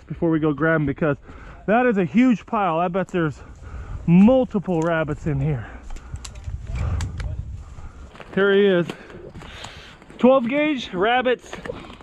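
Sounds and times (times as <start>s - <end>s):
footsteps through dry brush: 2.6s - 11.0s
wind buffeting microphone: 3.2s - 8.4s
twigs snapping: 5.8s - 7.4s.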